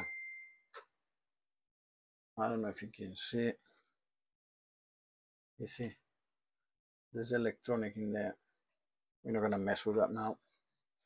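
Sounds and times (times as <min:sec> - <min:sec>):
high ringing tone: 0:00.0 - 0:00.7.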